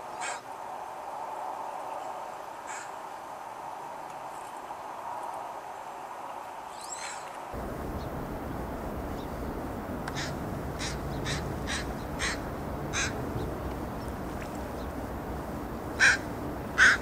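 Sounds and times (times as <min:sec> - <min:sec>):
low background noise: 0:07.3 - 0:17.0
crow cawing: 0:10.1 - 0:13.3, 0:15.9 - 0:17.0.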